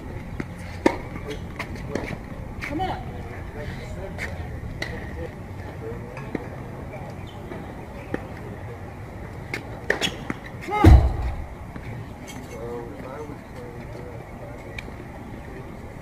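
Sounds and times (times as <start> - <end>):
tennis balls bouncing and struck: 0.2 - 2.2, 9.5 - 12.3
low outdoor rumble: 10.7 - 12.3
low thump: 10.8 - 11.9.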